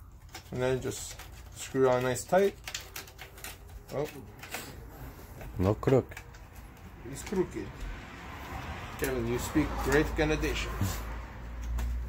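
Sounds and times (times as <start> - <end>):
plastic parts clicking and rattling: 0.0 - 7.9, 11.4 - 12.0.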